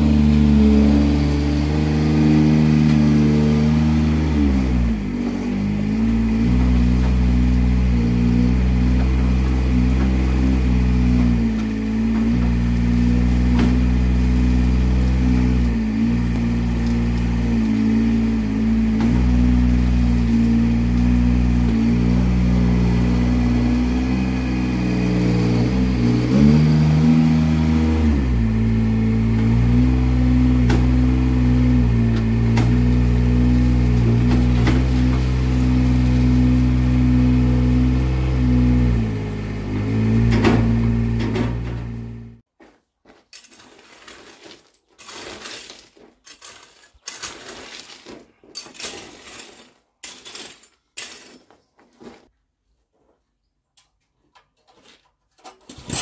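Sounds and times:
mini loader engine running: 0:00.0 - 0:42.5.

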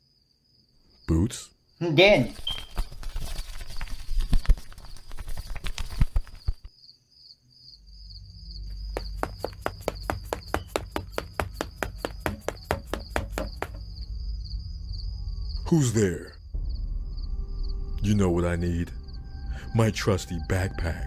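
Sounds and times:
cricket chirring: 0:00.0 - 0:21.0
cartoon footsteps patter: 0:02.2 - 0:06.7, 0:08.8 - 0:14.0
scattered knocks: 0:08.9 - 0:14.0
low rumble: 0:14.0 - 0:15.7, 0:16.3 - 0:20.8.

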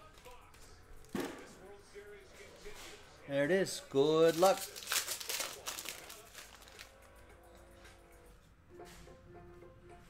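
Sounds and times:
foil wrapper tearing and crinkling: 0:04.2 - 0:06.9.

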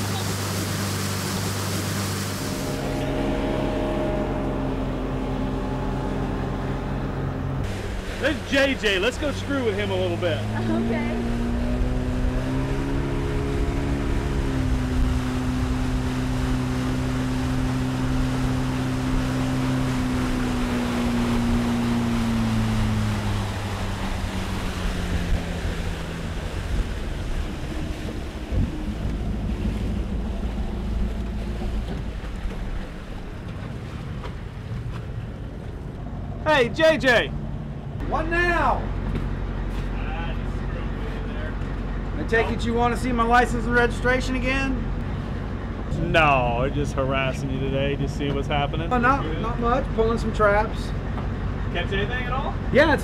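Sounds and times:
motorboat engine: 0:00.0 - 0:53.0
water rushing past hull: 0:00.0 - 0:53.0
wind: 0:00.0 - 0:53.0.

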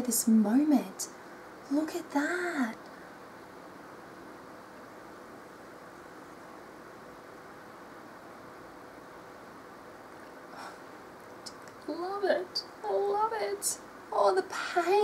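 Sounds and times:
faint room hum and hiss: 0:00.0 - 0:15.0.

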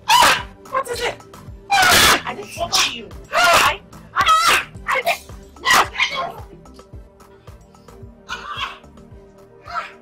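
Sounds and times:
background music: 0:00.0 - 0:10.0
loud pitch-bending cries: 0:08.3 - 0:08.9.

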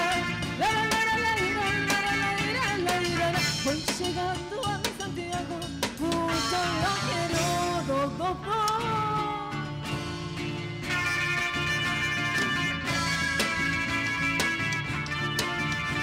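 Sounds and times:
drum kit beat: 0:00.0 - 0:08.0, 0:09.9 - 0:16.0
guitars: 0:00.0 - 0:16.0.

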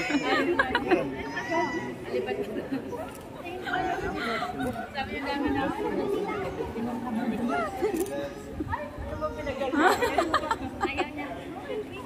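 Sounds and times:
indistinct chatter in reverberant room: 0:00.0 - 0:12.0.

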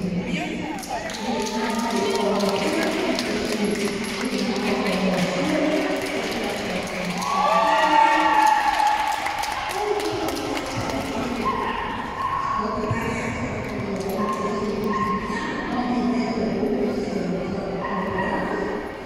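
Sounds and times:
voices echoing in a hall: 0:00.0 - 0:19.0.

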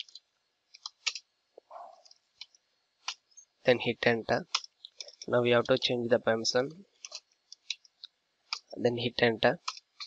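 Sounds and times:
soft irregular clicks: 0:00.0 - 0:03.5, 0:04.4 - 0:06.0, 0:06.6 - 0:08.8, 0:09.5 - 0:10.0
man speaking: 0:03.7 - 0:04.6, 0:05.2 - 0:06.8, 0:08.7 - 0:09.7.

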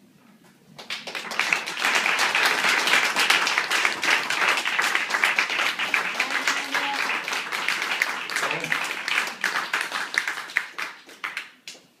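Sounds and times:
audience hand claps: 0:00.8 - 0:12.0.

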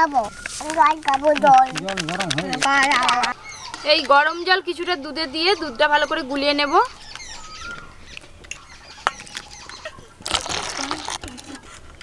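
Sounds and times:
birds chirping faintly: 0:00.0 - 0:12.0.

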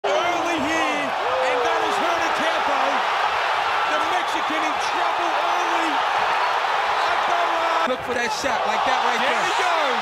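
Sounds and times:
man commentating: 0:00.0 - 0:03.1, 0:03.8 - 0:06.1, 0:07.0 - 0:10.0
arena crowd noise: 0:00.0 - 0:10.0.

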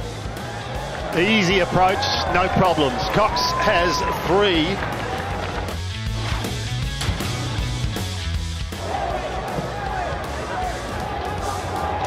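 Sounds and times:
background music with deep bass: 0:00.0 - 0:12.0.

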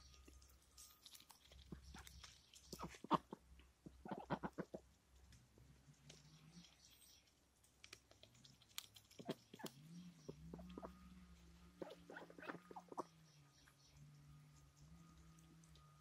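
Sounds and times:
ducks pecking at feed: 0:00.0 - 0:16.0.

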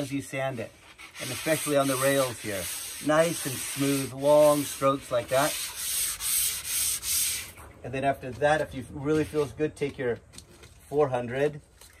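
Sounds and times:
sandpaper rubbing on wood: 0:00.8 - 0:07.6.

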